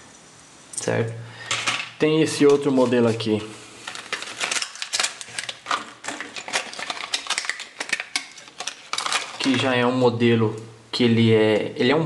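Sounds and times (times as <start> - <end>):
plastic blister pack crackling: 2.6 - 9.9.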